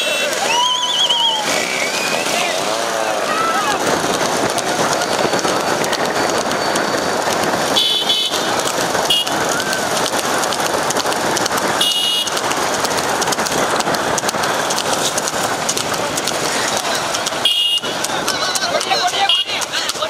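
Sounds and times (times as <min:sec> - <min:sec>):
vehicle horns honking: 0:00.0 - 0:00.7, 0:06.7 - 0:09.5, 0:11.8 - 0:12.4, 0:17.3 - 0:19.9
motorbikes engine noise: 0:00.0 - 0:20.0.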